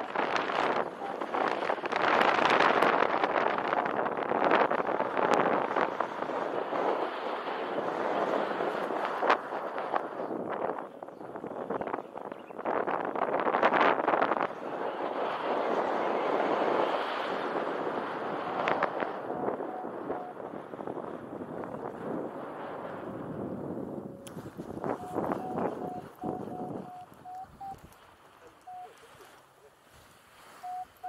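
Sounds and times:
wind rushing over microphone: 0:00.0 - 0:31.0
short even-pitched beeps: 0:25.0 - 0:27.9, 0:28.5 - 0:29.0, 0:30.6 - 0:31.0.

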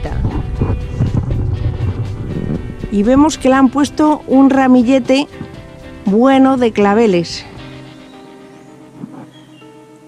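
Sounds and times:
wind buffeting microphone: 0:00.0 - 0:07.0
faint background music: 0:00.0 - 0:10.0.

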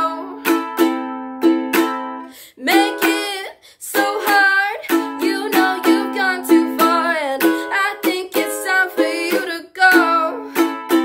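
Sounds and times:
person singing: 0:00.0 - 0:00.9, 0:02.5 - 0:11.0
ukulele strumming: 0:00.0 - 0:11.0.

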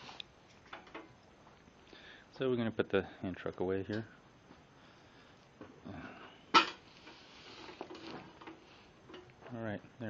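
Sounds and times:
rustling and shuffling: 0:06.9 - 0:09.6.

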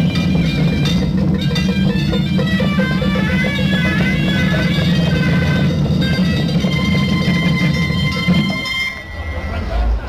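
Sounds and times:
hand drum ensemble: 0:00.0 - 0:10.0
held high tone: 0:00.0 - 0:10.0.

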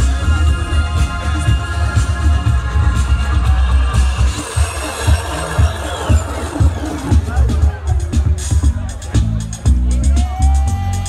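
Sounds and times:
bass kick drum: 0:00.0 - 0:11.0
loud house music: 0:00.0 - 0:11.0.

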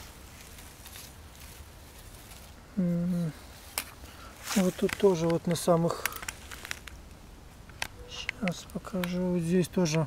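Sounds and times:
faint rustling: 0:00.0 - 0:09.2
man saying a held eh: 0:02.8 - 0:03.4.

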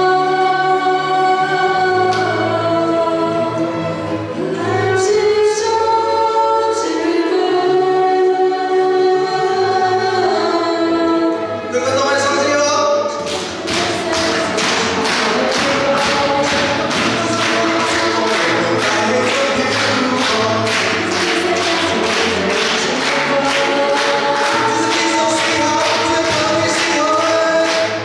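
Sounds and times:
choir singing: 0:00.0 - 0:28.0
string ensemble: 0:00.0 - 0:28.0.

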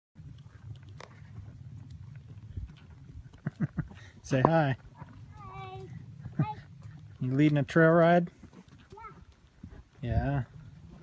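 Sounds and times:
hoof steps on dirt: 0:00.2 - 0:11.0
low rumble of riding movement: 0:00.2 - 0:11.0.

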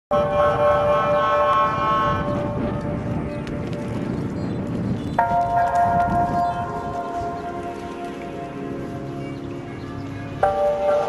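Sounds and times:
loud steady held tone: 0:00.1 - 0:02.6.

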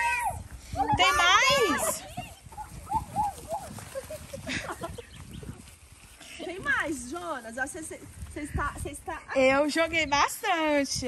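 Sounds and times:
footsteps on grass: 0:00.4 - 0:10.0.

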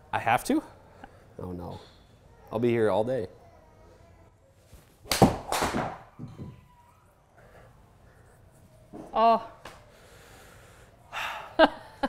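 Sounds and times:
ball hitting impact screen: 0:05.1 - 0:06.5.

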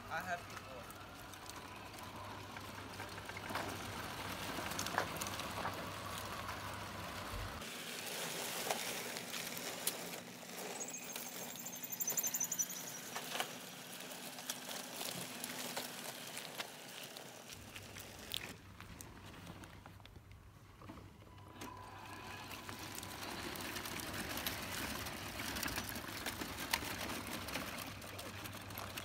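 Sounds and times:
outdoor background noise: 0:00.0 - 0:29.0
high repeated chirping: 0:10.6 - 0:13.8
tyres crunching on dirt: 0:12.7 - 0:20.2.

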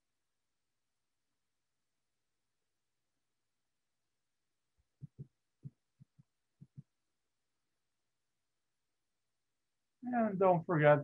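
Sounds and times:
soft low thumps: 0:05.0 - 0:06.9.

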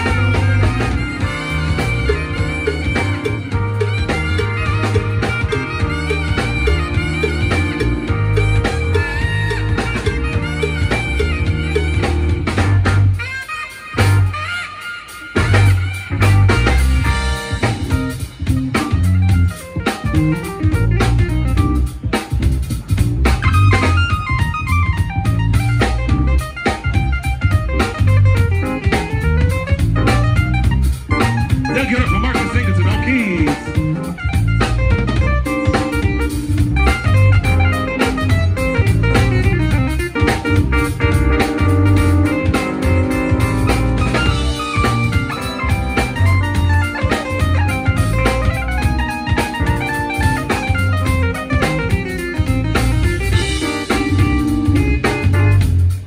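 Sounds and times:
plucked bass line: 0:00.0 - 0:13.2, 0:15.4 - 0:56.0
drum kit: 0:00.0 - 0:56.0
guitar: 0:00.0 - 0:56.0
keyboard: 0:00.0 - 0:56.0.

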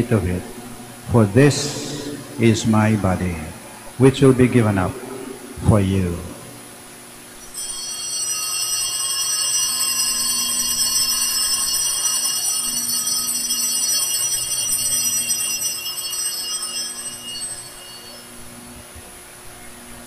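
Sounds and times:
altar bells ringing: 0:07.4 - 0:19.1.

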